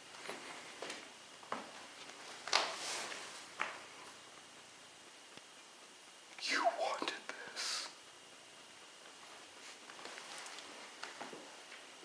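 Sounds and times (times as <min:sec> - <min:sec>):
man whispering breathily: 0:06.4 - 0:08.0.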